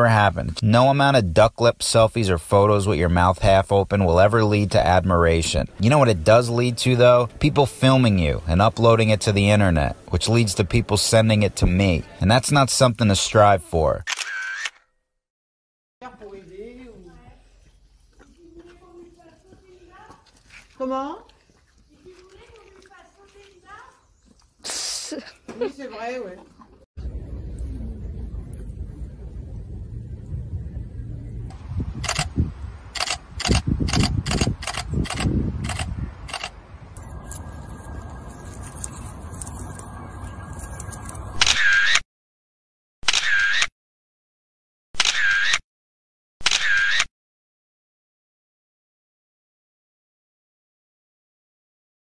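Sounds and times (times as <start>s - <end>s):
camera shutter clicks: 14.0s - 14.8s, 32.0s - 32.3s, 33.0s - 36.6s, 41.4s - 42.0s, 43.0s - 43.7s, 45.0s - 45.6s, 46.4s - 47.1s.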